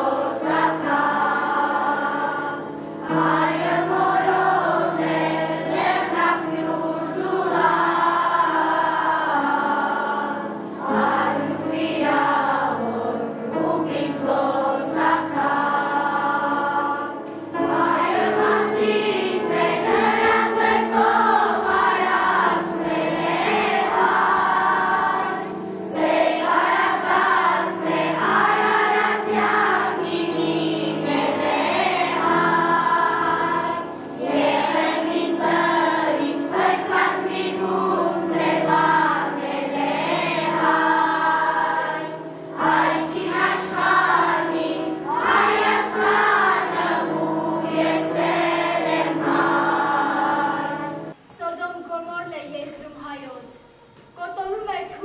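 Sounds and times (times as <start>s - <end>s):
children's choir singing: 0.0s - 51.3s.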